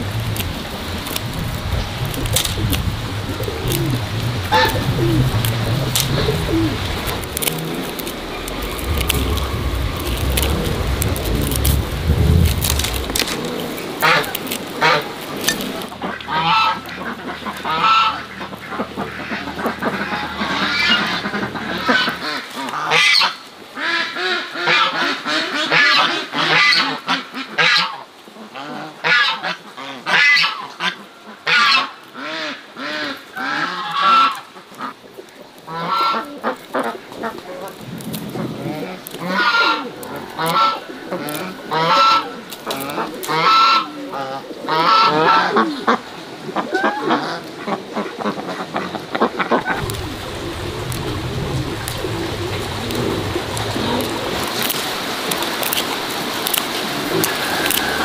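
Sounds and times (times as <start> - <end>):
grass stems rustling and crackling: 0.0 - 23.3, 33.3 - 58.0
geese honking: 1.8 - 26.8, 35.7 - 58.0.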